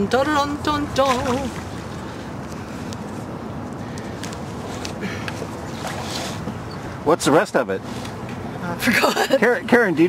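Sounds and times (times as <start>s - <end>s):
water around boat: 0.0s - 10.0s.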